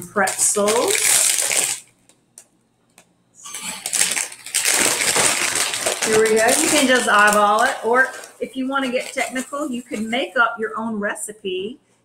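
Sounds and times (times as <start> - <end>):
pretzels clattering in bag: 0.0 - 1.9, 3.4 - 10.3
plastic snack bag crinkling: 0.0 - 2.2, 2.9 - 10.4.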